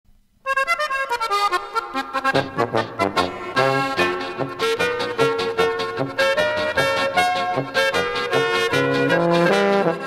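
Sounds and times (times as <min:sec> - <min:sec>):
accordion run: 0:00.5 - 0:10.0
polka band with bass: 0:00.5 - 0:10.0.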